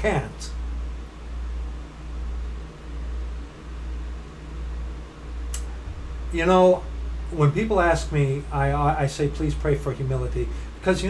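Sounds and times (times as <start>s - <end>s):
low pulsing rumble: 0.0s - 11.0s.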